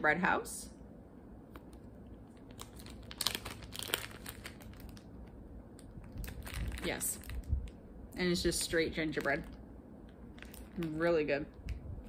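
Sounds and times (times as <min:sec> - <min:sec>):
plastic bag crinkling: 0:01.5 - 0:07.8, 0:08.4 - 0:11.6
small crackles and clicks: 0:08.5 - 0:11.8.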